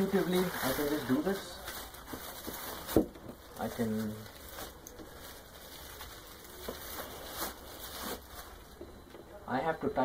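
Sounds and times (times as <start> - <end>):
paper rustling and crinkling: 0.0 - 8.8.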